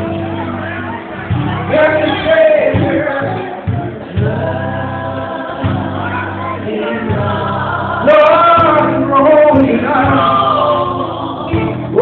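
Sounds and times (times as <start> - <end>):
backing singers: 0.0 - 12.0
lead singer singing gospel: 0.0 - 12.0.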